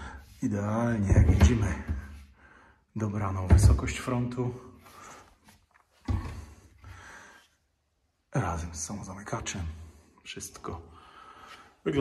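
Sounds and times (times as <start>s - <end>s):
cabinet door being handled: 1.0s - 2.2s, 3.4s - 4.0s.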